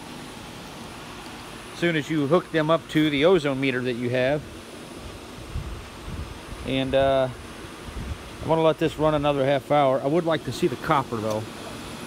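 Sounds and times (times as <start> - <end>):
electric fans whooshing: 0.0 - 12.0.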